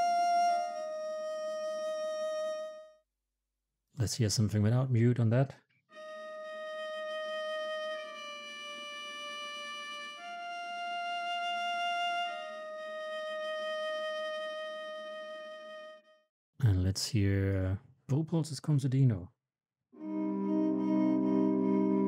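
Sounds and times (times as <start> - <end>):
viola bowed notes: 0.0 - 2.9, 6.0 - 16.2, 20.0 - 22.0.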